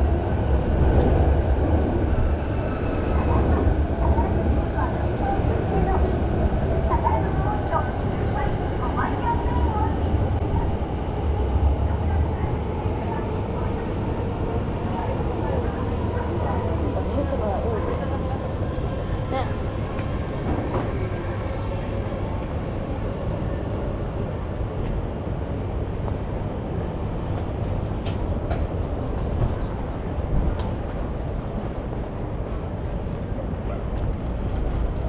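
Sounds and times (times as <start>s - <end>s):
low rumble of city noise: 0.0s - 35.0s
passersby talking: 3.1s - 23.2s.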